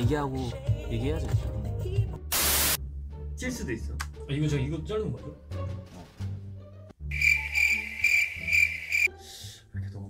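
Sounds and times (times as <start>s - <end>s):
quiet background music: 0.0s - 10.0s
cricket chirping trill: 7.1s - 9.1s.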